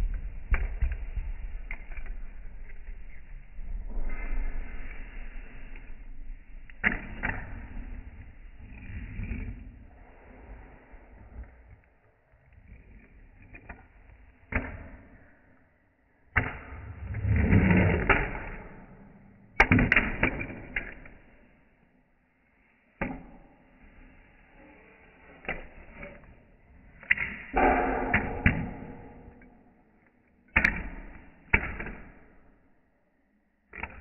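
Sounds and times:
fingerboard scraping: 17.0 - 18.6.

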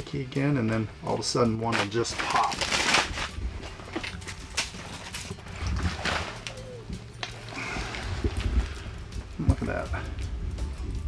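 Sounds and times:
fishing gear clicks and knocks: 0.6 - 11.0
low rumble: 3.1 - 11.0.

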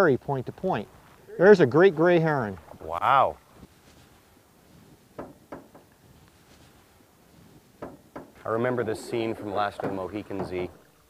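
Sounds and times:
faint outdoor background: 0.0 - 11.0
paddle knocking against canoe: 5.2 - 5.9, 7.8 - 8.4, 9.4 - 10.8.

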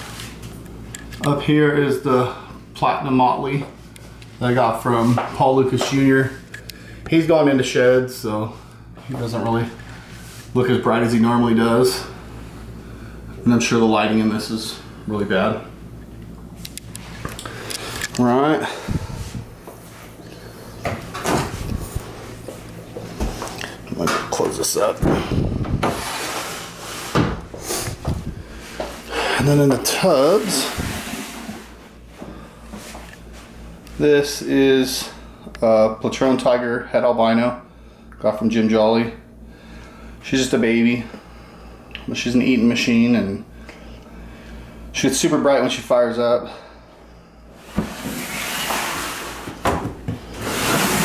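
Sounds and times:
plastic tub scraping slide: 30.3 - 31.8, 47.7 - 49.6, 50.3 - 51.0.

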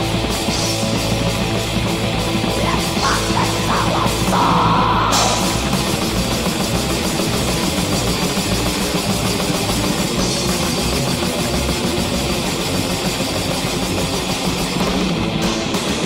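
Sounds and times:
distorted electric guitars: 0.0 - 16.0
fast dense drumming: 0.0 - 16.0.

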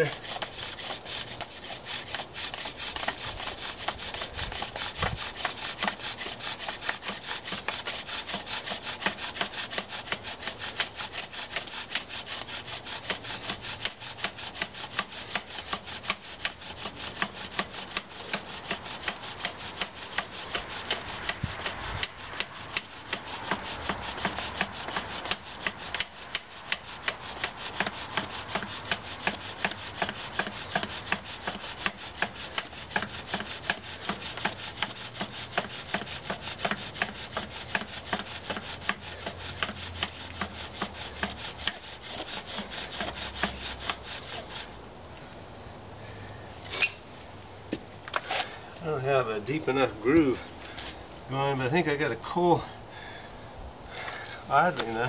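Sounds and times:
bow drill rasping: 0.0 - 44.8.

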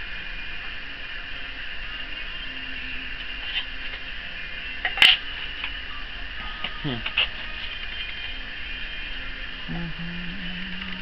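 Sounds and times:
steady hiss: 0.0 - 11.0.

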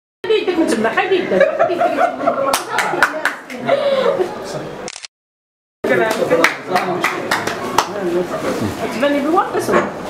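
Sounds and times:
people talking: 0.2 - 4.8, 5.9 - 9.9
people clapping: 2.5 - 3.7, 5.8 - 8.0.

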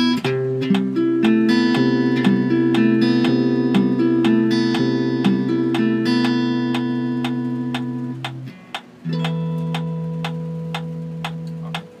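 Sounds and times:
acoustic guitar chord ringing: 0.0 - 12.0
metronome ticking: 0.0 - 12.0.

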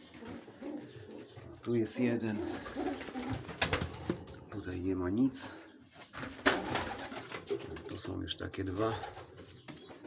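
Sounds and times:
pigeons cooing: 0.0 - 4.7.

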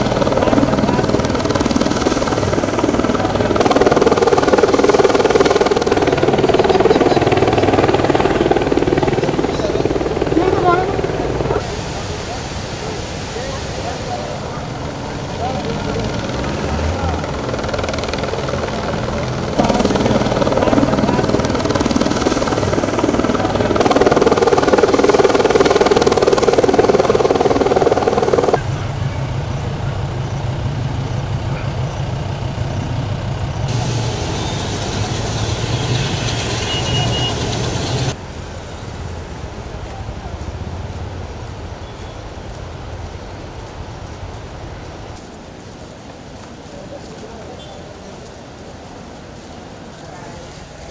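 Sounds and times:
helicopter rotor and engine: 0.0 - 38.2.

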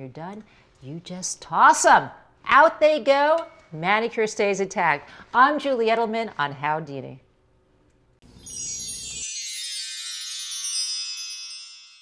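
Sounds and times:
bell-like chime sting: 8.2 - 12.0.

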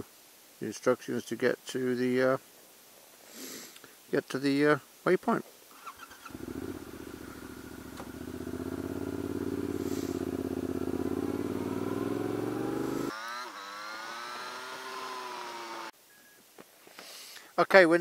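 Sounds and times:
motorcycle engine running: 6.0 - 13.3.

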